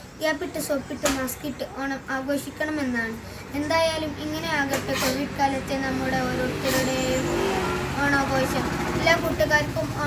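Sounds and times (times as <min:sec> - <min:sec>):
boy giving a speech: 0:00.0 - 0:10.0.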